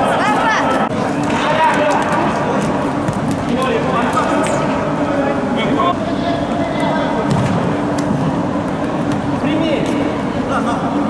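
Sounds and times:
voices talking and calling out: 0.0 - 11.0.

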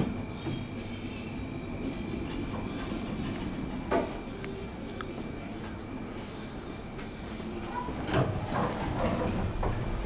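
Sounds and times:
mechanical rumble: 0.0 - 10.0
elevator doors sliding open: 7.4 - 10.0.

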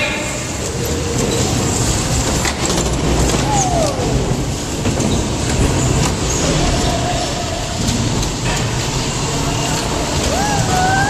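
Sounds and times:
bumper car rumbling: 0.0 - 11.0.

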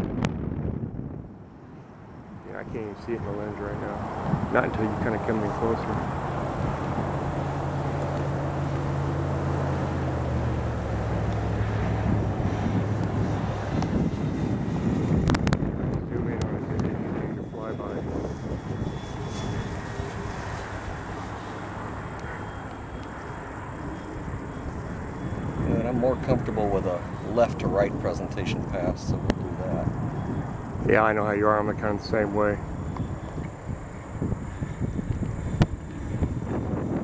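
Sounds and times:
model plane motors flying past: 2.8 - 37.0.

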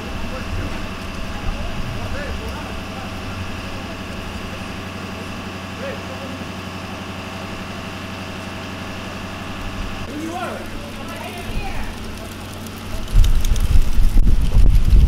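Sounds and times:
vehicle engine idling: 0.0 - 14.8
faint indistinct voices: 10.1 - 13.7.

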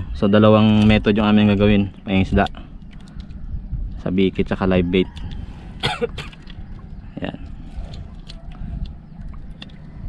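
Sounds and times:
low steady rumble: 0.0 - 10.0
person clearing throat: 5.8 - 6.4.

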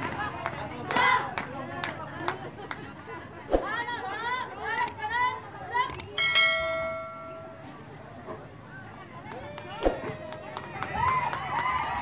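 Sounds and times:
metallic bell-like ring: 6.2 - 7.8.

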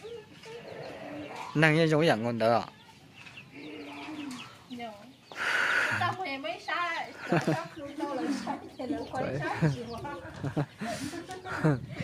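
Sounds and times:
bird cooing: 3.6 - 4.6.

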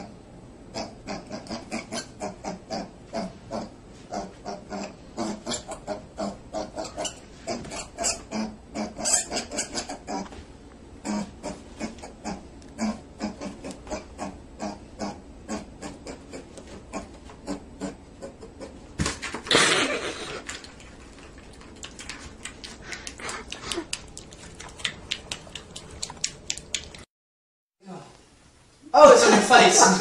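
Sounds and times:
puppy grunting breaths: 20.1 - 26.2.

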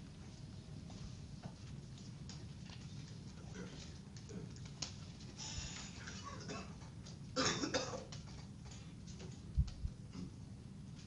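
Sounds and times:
person coughing: 6.2 - 6.8, 7.4 - 8.1.

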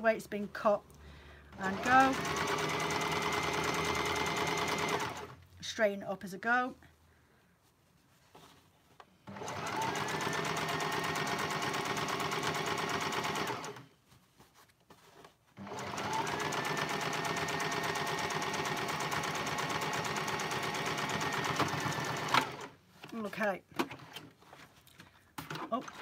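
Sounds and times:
sewing machine stitching: 1.5 - 5.4, 9.2 - 13.9, 15.6 - 22.8.

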